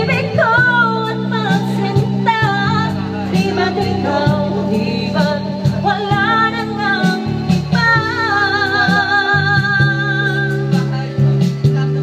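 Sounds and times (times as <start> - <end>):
backing track with bass and beat: 0.0 - 12.0
person singing into microphone: 0.0 - 12.0.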